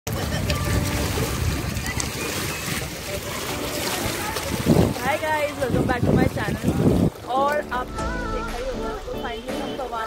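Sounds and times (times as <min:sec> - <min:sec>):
choppy lake water: 0:00.0 - 0:10.0
wind rumbling on microphone: 0:00.1 - 0:07.3.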